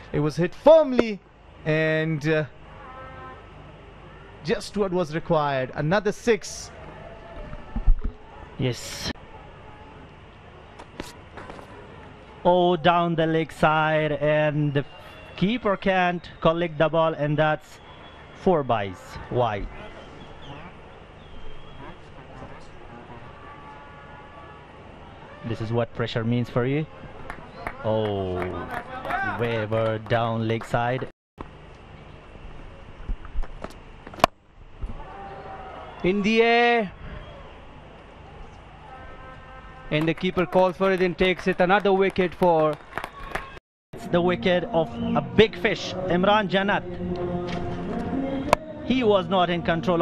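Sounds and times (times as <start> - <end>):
low ground ambience: 44.0 - 50.0.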